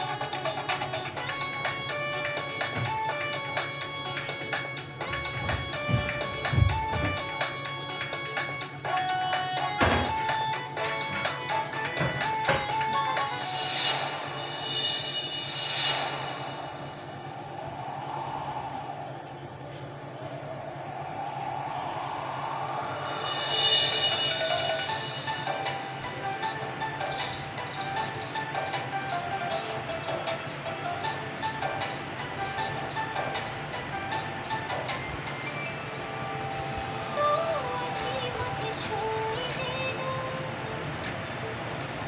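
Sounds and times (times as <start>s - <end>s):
droning pad: 0.0s - 42.0s.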